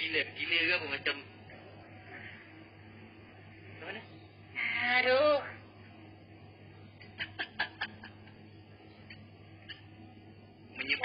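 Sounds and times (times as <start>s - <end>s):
person giggling: 7.0s - 8.4s.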